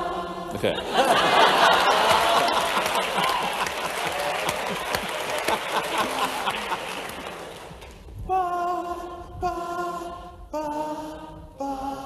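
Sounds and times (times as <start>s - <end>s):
audience applauding: 1.2s - 8.0s.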